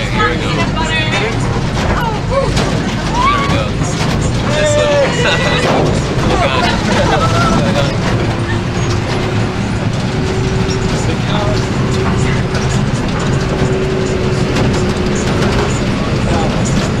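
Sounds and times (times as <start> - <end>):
bodywork rattles: 0.0 - 17.0
bus engine and road rumble: 0.0 - 17.0.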